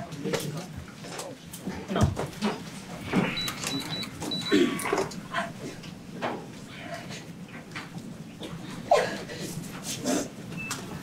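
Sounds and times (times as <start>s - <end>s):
murmured voices: 0.0s - 7.6s.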